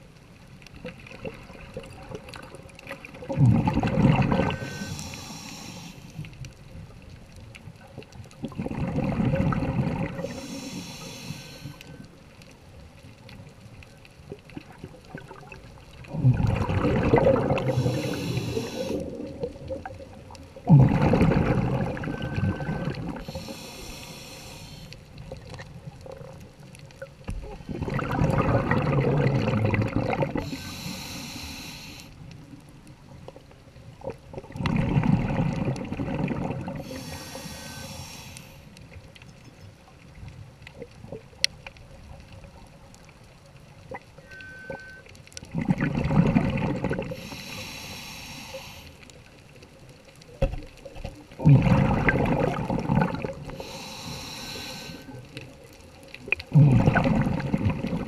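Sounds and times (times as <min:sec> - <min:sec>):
bubbling rush: 0:01.0 - 0:05.5, 0:08.3 - 0:11.8, 0:14.6 - 0:24.7, 0:27.6 - 0:31.0, 0:34.3 - 0:38.3, 0:45.5 - 0:47.7, 0:51.4 - 0:55.0, 0:56.2 - 0:58.0
diver breathing through regulator: 0:04.3 - 0:06.3, 0:10.0 - 0:12.1, 0:17.4 - 0:19.4, 0:20.8 - 0:25.0, 0:30.3 - 0:32.2, 0:36.7 - 0:38.8, 0:47.0 - 0:49.1, 0:53.4 - 0:55.4.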